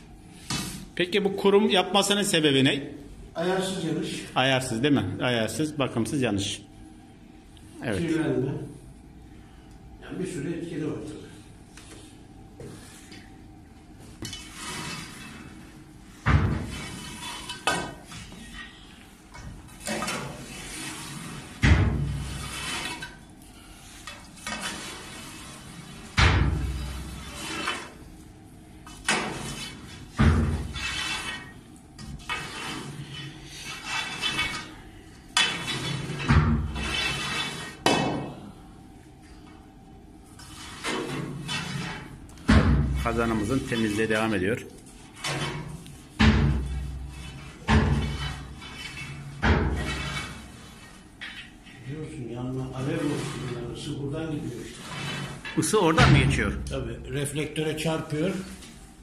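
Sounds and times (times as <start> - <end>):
metal rod scraping in flue: 14.2 - 15.6, 19.8 - 26.1, 26.7 - 28.0, 29.0 - 37.8, 46.7 - 51.9, 52.7 - 55.6.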